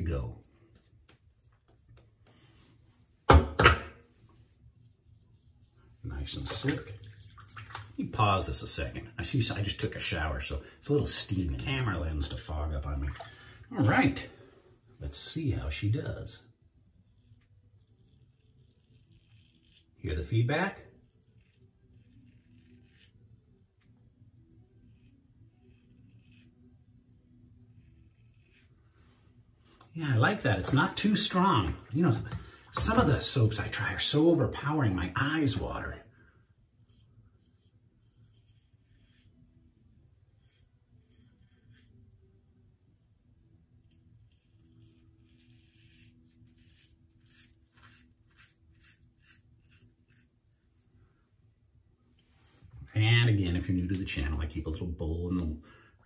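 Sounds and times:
razor scraping stubble: 17.0s - 23.4s, 24.5s - 26.9s, 27.5s - 34.7s, 36.8s - 42.1s, 43.8s - 51.0s.

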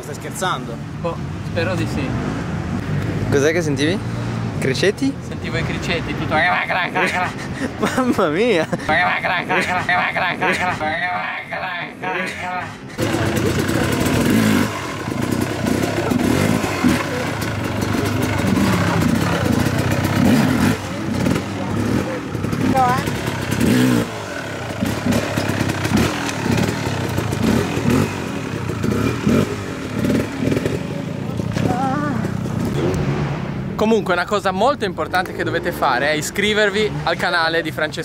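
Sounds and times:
voices: 4.8s - 14.2s, 15.7s - 23.3s, 30.8s - 32.9s
dirt bike engine revving: 11.9s - 33.7s, 35.5s - 37.4s.

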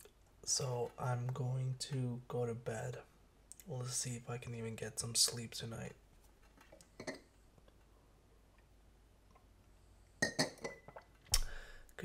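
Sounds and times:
glass clinking: 10.2s - 11.0s.

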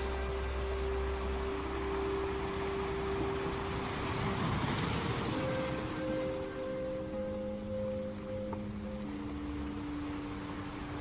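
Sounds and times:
held synth pad notes: 0.0s - 11.0s
wash of noise: 0.0s - 11.0s.

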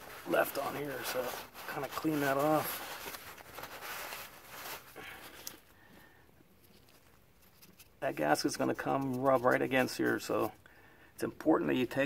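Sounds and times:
paper towel rubbing on metal: 0.0s - 4.9s.

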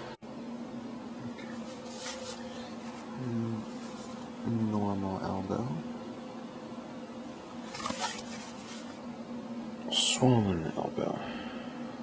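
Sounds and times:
low electrical hum: 0.0s - 12.0s
fabric rustling: 7.6s - 9.0s.

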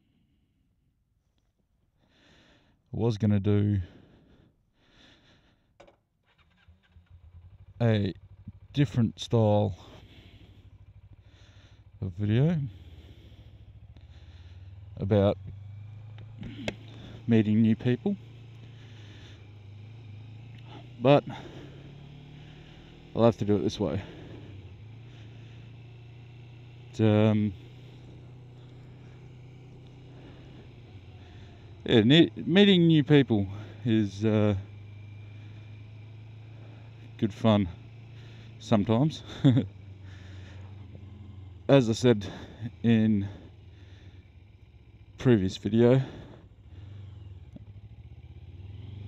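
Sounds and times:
motorcycle engine humming: 0.0s - 49.0s.

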